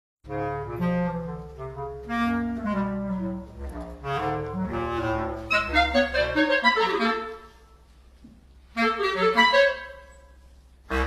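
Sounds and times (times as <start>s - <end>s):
clarinet duo playing: 0.3s - 8.0s, 8.7s - 11.0s.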